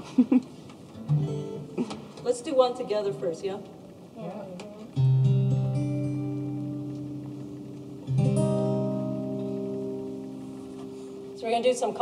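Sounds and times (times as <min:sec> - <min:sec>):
acoustic guitar chord strummed: 0:00.9 - 0:03.4, 0:04.7 - 0:12.0.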